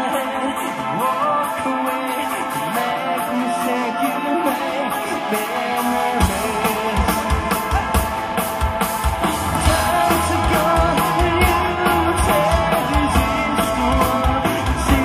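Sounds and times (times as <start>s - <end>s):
person singing: 0.0s - 8.8s, 9.5s - 15.0s
bass guitar: 0.0s - 15.0s
drums: 0.0s - 15.0s
guitar: 0.0s - 15.0s.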